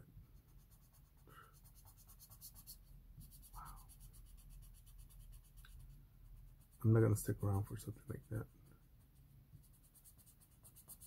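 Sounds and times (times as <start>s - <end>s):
marker scratching on paper: 0.4s - 11.0s.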